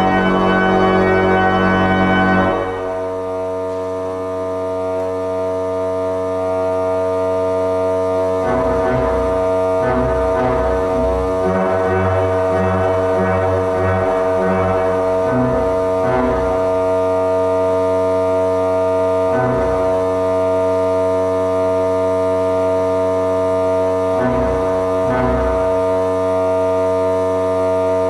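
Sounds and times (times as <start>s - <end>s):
pipe organ playing: 0.0s - 3.4s, 8.4s - 17.4s, 19.2s - 20.4s, 24.0s - 26.1s
stuck low organ note: 0.0s - 4.0s, 8.3s - 17.7s, 18.9s - 20.6s, 24.0s - 26.6s.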